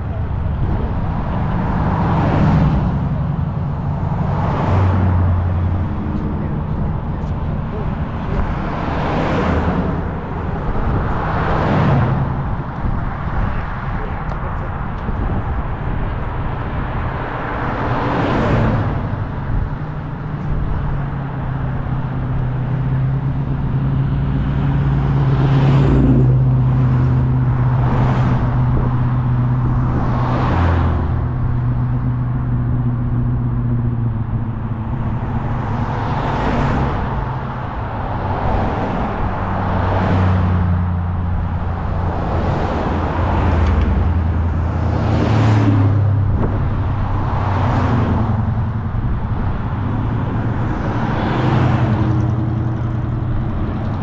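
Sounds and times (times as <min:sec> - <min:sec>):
cars driving past: 0:00.0 - 0:54.0.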